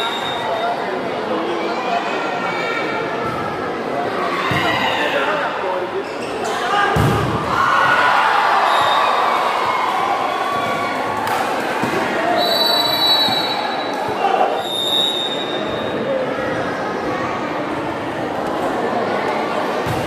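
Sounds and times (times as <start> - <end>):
high whistle: 0.0 - 0.7, 12.4 - 13.9, 14.6 - 15.6
spectators shouting and cheering: 6.6 - 20.0.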